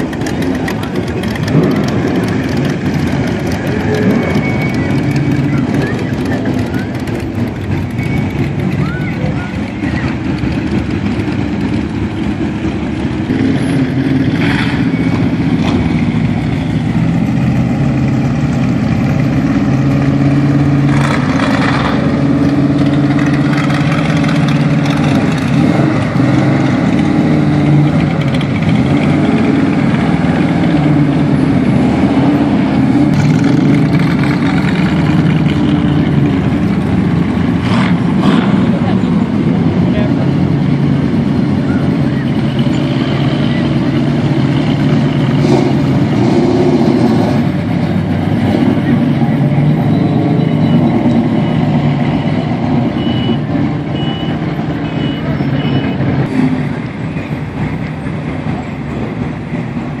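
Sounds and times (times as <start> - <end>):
car engines rumbling past: 0.0 - 60.0.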